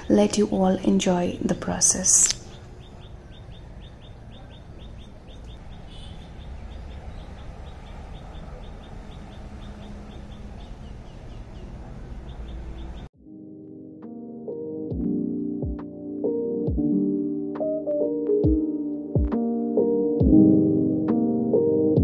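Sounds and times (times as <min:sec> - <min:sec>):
small bird chirping: 0:01.8 - 0:13.1
soft keyboard music: 0:12.5 - 0:22.0.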